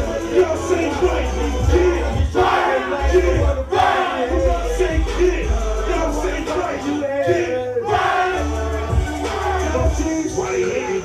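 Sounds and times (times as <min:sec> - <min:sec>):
crowd noise: 0:00.0 - 0:11.0
loud hip-hop beat: 0:00.0 - 0:11.0.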